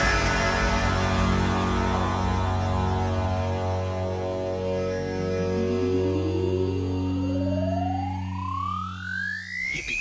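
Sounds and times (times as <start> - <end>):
held bass notes: 0.0 - 8.5
rising synthesizer sweep: 0.0 - 10.0.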